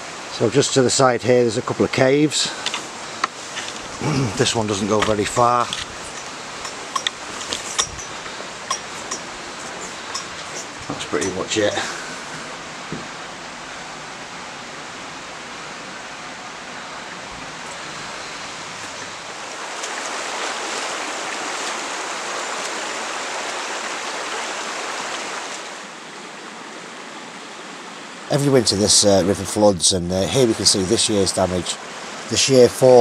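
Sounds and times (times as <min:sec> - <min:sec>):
stream running over stones: 0:00.0 - 0:33.0.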